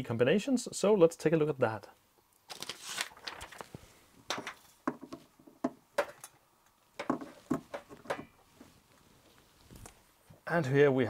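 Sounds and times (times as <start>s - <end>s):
paper rustling: 2.5s - 4.8s.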